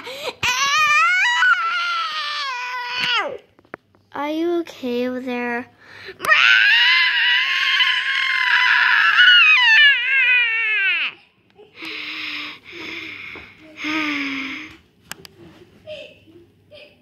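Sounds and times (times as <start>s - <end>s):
child wailing: 0.4s - 3.4s, 6.2s - 11.2s.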